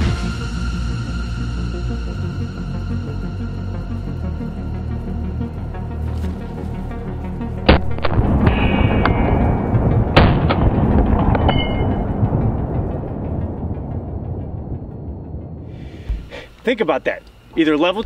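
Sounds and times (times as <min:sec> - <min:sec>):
dramatic background music: 0:00.0 - 0:16.5.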